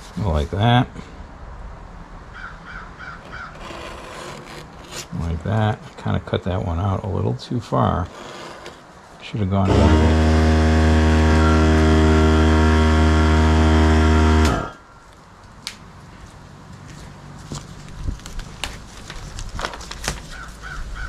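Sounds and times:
loud low-pitched hum: 9.6s - 15.0s.

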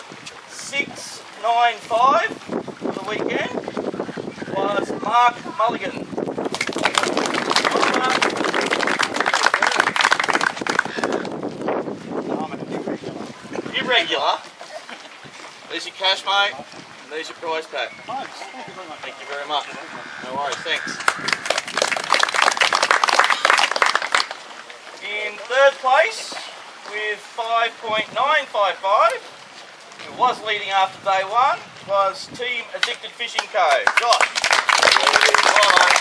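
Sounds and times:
crowd applauding: 6.5s - 11.3s, 20.0s - 24.4s, 33.8s - 36.0s
voices: 12.4s - 23.6s.

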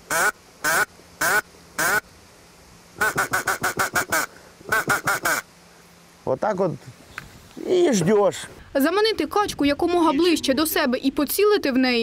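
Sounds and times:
duck call quacking: 0.1s - 2.0s, 3.0s - 5.5s.

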